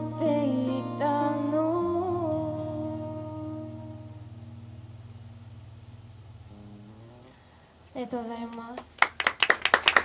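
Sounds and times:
woman singing: 0.0s - 3.9s, 8.0s - 9.0s
acoustic guitar chord ringing: 0.0s - 7.6s.

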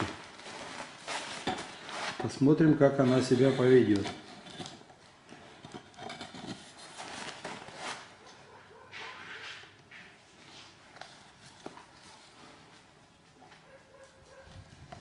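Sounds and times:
rustling: 0.0s - 15.0s.

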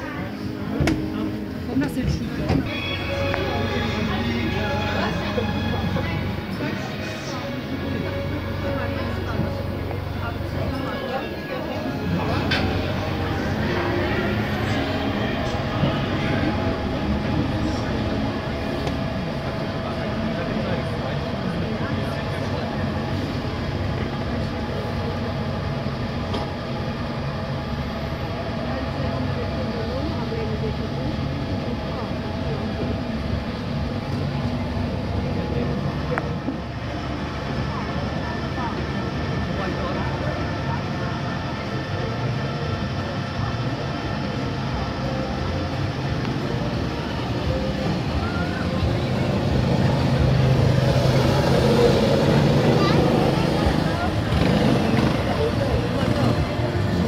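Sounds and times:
indistinct voices: 0.0s - 57.0s
monorail train running: 0.0s - 57.0s.

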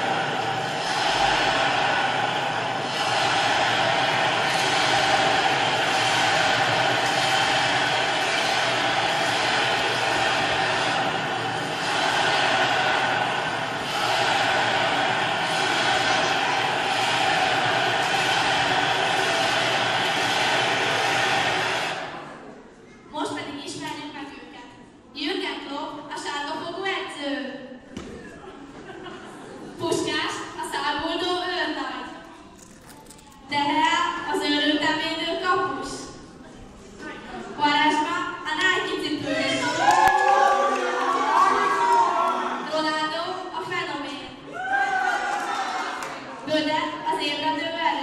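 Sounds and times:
big crowd din: 0.0s - 26.6s, 27.8s - 48.0s.

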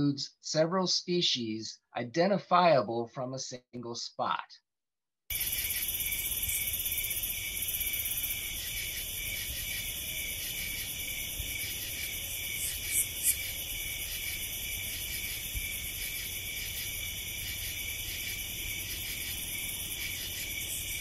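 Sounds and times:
insect chorus buzzing and trilling: 5.3s - 21.0s
short loud insect notes: 5.3s - 21.0s.

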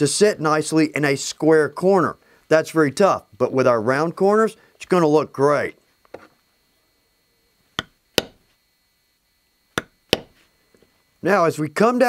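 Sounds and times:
mallet striking leather stamp: 7.8s - 8.4s, 9.8s - 10.4s.

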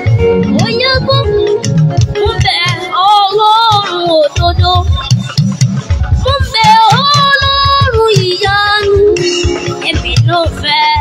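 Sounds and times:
boy singing into a microphone: 0.0s - 5.4s, 6.2s - 11.0s
live band with pulsing bass: 0.0s - 11.0s.

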